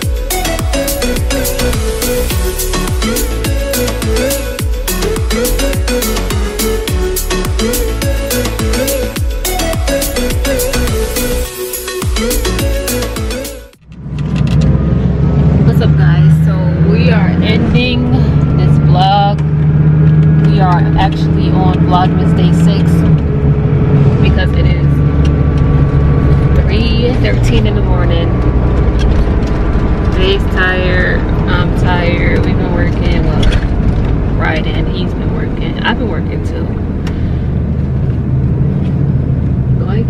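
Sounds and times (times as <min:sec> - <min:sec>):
bus engine drone: 0:00.0 - 0:40.0
people talking: 0:15.6 - 0:19.4, 0:20.4 - 0:23.1, 0:24.2 - 0:25.0, 0:26.6 - 0:28.4, 0:30.1 - 0:33.6, 0:34.3 - 0:36.8, 0:39.8 - 0:40.0.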